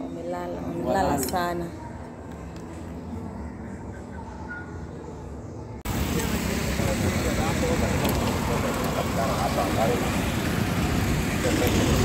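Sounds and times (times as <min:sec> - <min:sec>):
faint voices of passers-by: 0:00.0 - 0:12.0
traffic noise: 0:00.0 - 0:12.0.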